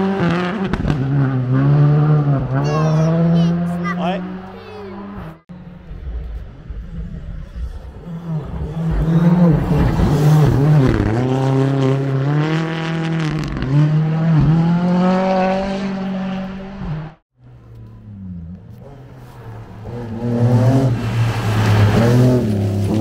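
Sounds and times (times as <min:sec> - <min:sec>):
rally car engine revving: 0:00.0 - 0:17.2, 0:17.8 - 0:23.0.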